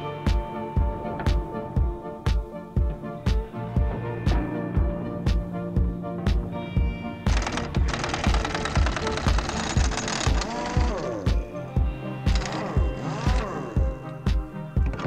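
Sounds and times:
music with thumping beat: 0.0s - 15.0s.

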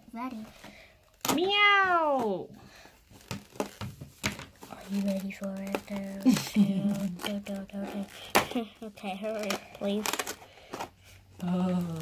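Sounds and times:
cardboard crinkling and tapping: 0.4s - 12.0s.

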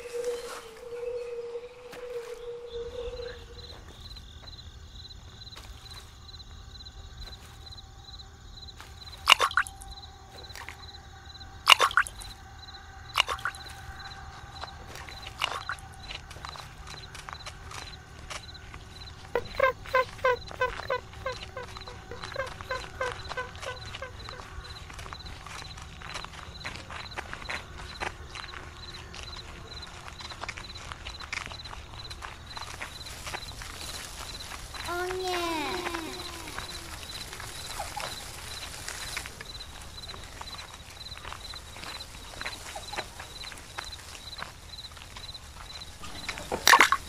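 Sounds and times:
animal calls: 0.0s - 4.1s, 9.1s - 29.9s, 31.1s - 44.5s, 45.9s - 47.0s
rising-and-falling animal calls: 19.3s - 24.8s.

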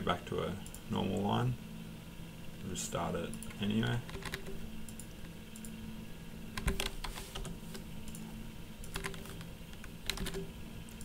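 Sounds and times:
faint steady hum: 0.0s - 11.0s
keyboard keystrokes: 3.4s - 5.7s, 6.6s - 8.2s, 8.8s - 11.0s.

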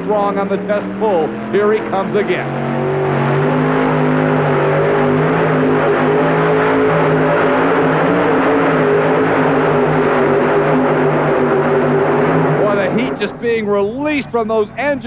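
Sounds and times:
pulling tractor engine at full throttle: 0.0s - 15.0s.

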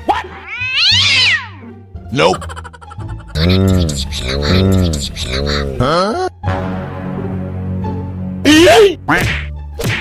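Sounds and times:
cat meowing: 0.4s - 1.6s.

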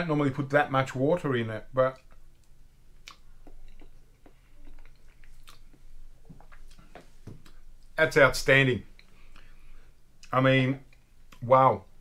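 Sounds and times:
person chewing: 2.0s - 7.7s.

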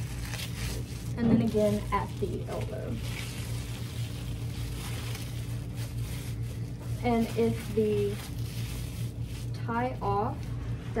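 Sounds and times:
cloth rustling: 0.0s - 11.0s
low room hum: 0.0s - 11.0s.

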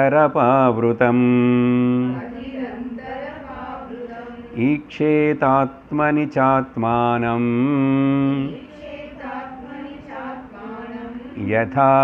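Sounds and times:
man chanting: 0.0s - 2.2s, 4.5s - 8.8s, 11.1s - 12.0s.

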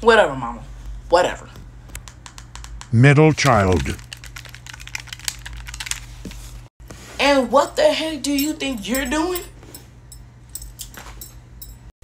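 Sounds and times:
low steady hum: 0.0s - 11.9s
controller buttons clicking: 2.0s - 4.1s.

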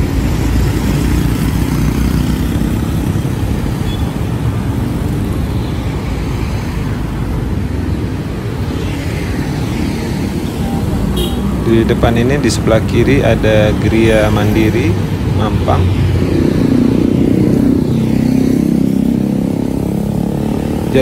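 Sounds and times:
vehicle road noise rumble: 0.0s - 21.0s.

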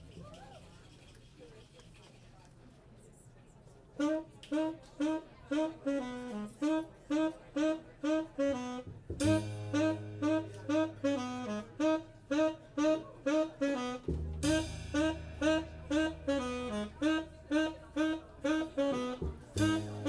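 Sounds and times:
saxophone staccato riff: 4.0s - 20.0s
drums: 8.8s - 11.6s, 14.0s - 17.7s, 18.5s - 20.0s.

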